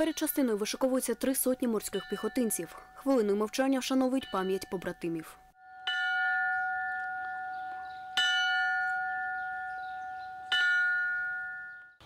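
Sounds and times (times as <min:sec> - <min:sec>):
brass bell tolling: 0:05.6 - 0:12.0.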